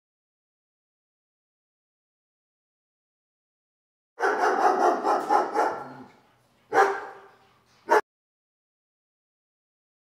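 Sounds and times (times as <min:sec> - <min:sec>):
dog barking: 0:04.2 - 0:06.1, 0:06.7 - 0:08.0.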